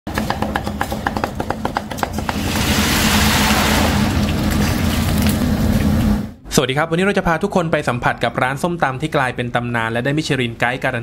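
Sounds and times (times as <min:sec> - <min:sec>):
cleaver chopping on wooden block: 0:00.1 - 0:02.4
loud sizzle of deep-frying: 0:02.2 - 0:06.3.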